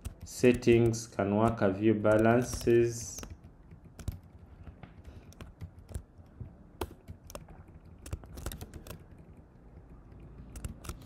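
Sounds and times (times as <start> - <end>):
computer keyboard typing: 0.0 - 11.0.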